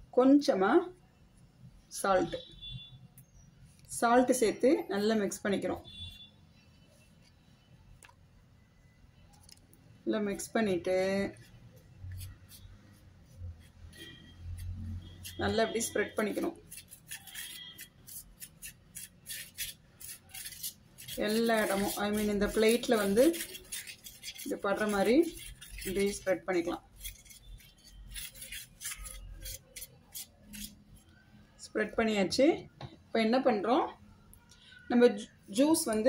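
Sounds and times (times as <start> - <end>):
spoon scraping metal plate: 13.6 - 30.9.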